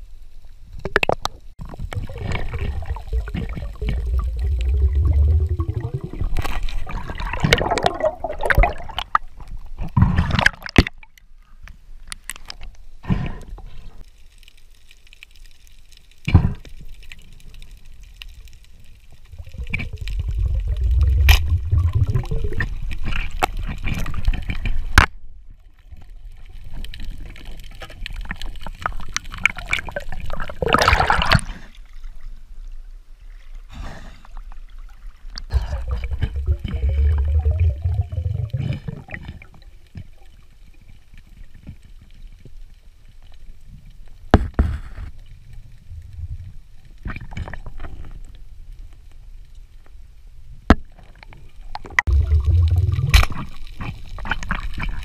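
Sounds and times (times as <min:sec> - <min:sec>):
underwater bubbling: 0:00.8 - 0:11.2, 0:16.5 - 0:25.0, 0:25.7 - 0:32.2, 0:34.5 - 0:42.7, 0:51.6 - 0:55.0
rushing water: 0:01.6 - 0:09.7, 0:19.1 - 0:25.0, 0:34.7 - 0:40.5, 0:51.8 - 0:55.0.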